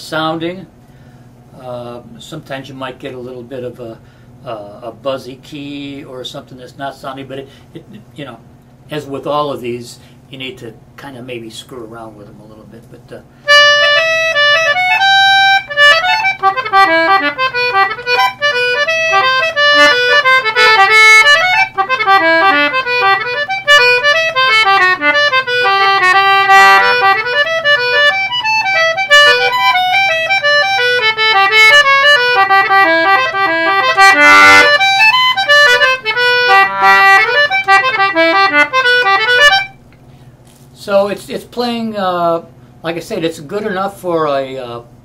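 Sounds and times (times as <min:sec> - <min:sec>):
concertina playing a tune: 0:13.5 - 0:39.9.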